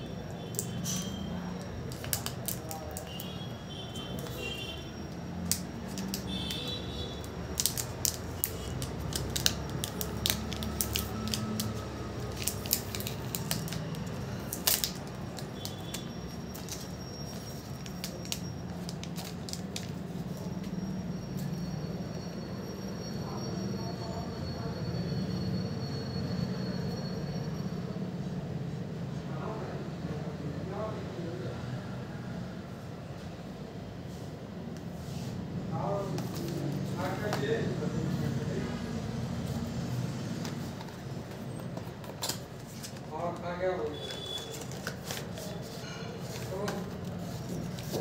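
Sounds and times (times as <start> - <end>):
cardboard box rustling: 44.5 - 48.0.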